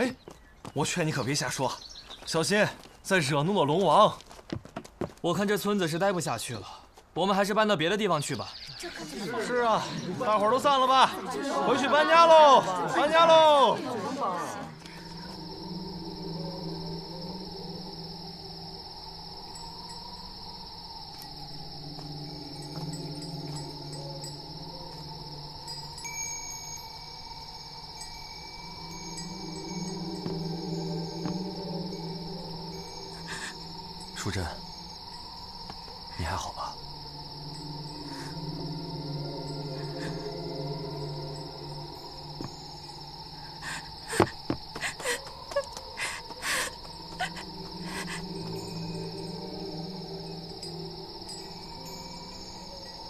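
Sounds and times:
crickets trilling: 0.0 - 53.0
low sustained drone: 8.8 - 53.0
downward-sweeping sounds: 8.9 - 44.1, 46.6 - 53.0.

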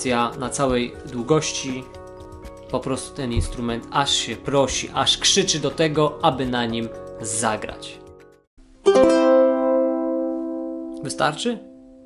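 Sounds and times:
ukulele chord strummed: 8.8 - 12.0.

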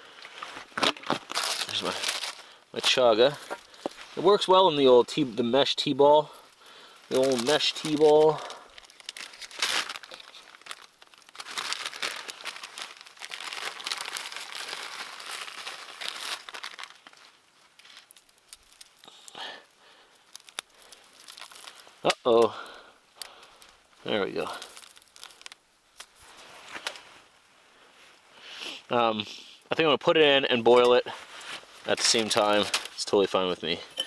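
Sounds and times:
plastic bag crinkling: 0.3 - 5.2, 6.2 - 22.1, 23.2 - 27.0.

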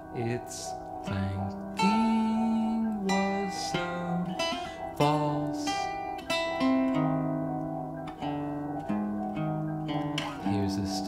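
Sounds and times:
acoustic guitar picking notes: 0.0 - 11.0.

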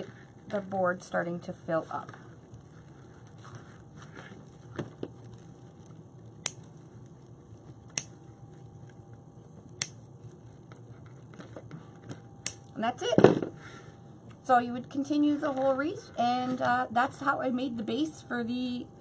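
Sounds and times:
mesh rustling and crinkling: 1.6 - 12.3.

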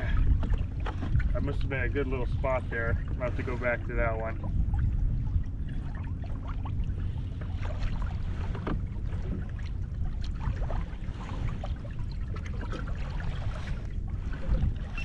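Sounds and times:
light ticks and splashes: 0.0 - 1.9, 2.6 - 15.0
waves lapping against kayak hull: 0.0 - 15.0
wind buffeting microphone: 0.0 - 15.0.

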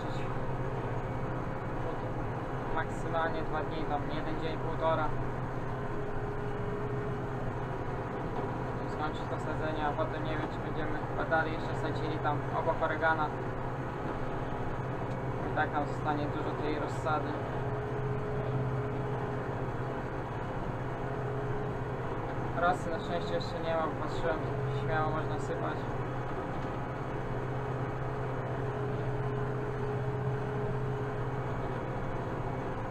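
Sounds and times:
tractor diesel engine drone: 0.0 - 32.9.

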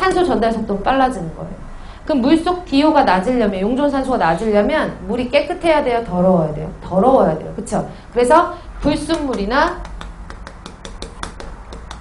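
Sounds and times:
chalk tapping on chalkboard: 9.1 - 12.0.

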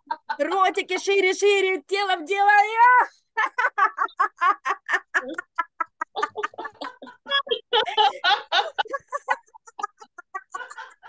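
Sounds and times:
hearty laughter: 3.3 - 11.0.

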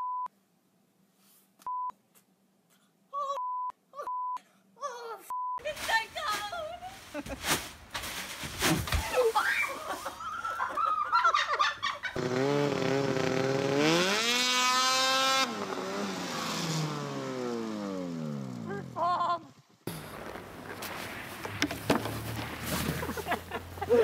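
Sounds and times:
snowmobile engine revving: 12.0 - 24.0.

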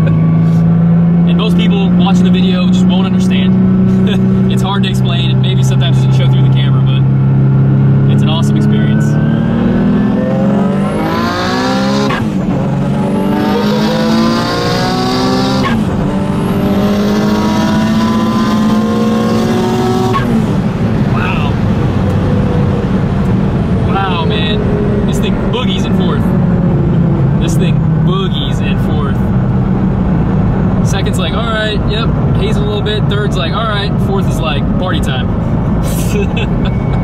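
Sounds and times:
car engine revving: 0.0 - 37.0.

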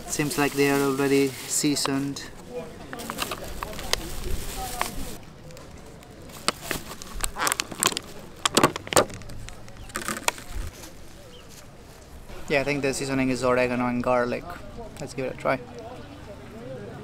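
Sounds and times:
plastic bag crinkling: 0.0 - 12.0
plastic container crackling: 0.0 - 12.2.

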